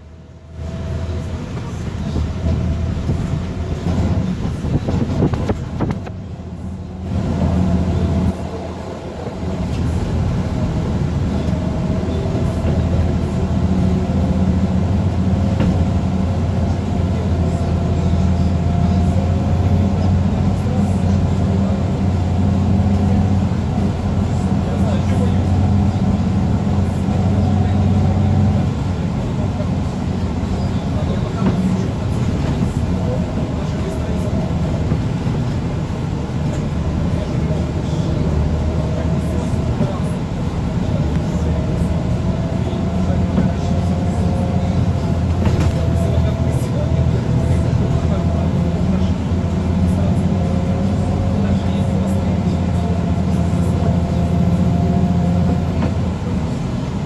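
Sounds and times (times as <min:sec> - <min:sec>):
vehicle engine droning: 0:00.0 - 0:57.0.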